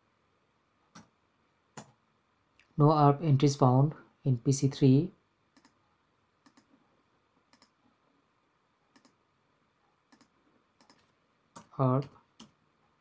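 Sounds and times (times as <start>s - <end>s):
computer mouse clicks: 0.9s - 1.1s, 1.8s - 2.0s, 5.5s - 5.8s, 6.4s - 6.7s, 7.5s - 7.8s, 8.9s - 9.2s, 10.1s - 12.6s.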